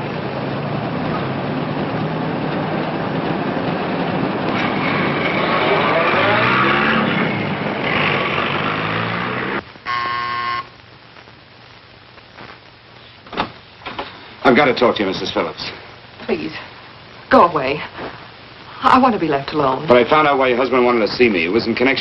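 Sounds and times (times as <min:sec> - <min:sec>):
city traffic: 0:00.0 - 0:10.6
car engine revving: 0:01.1 - 0:09.6
door buzzer: 0:09.8 - 0:10.7.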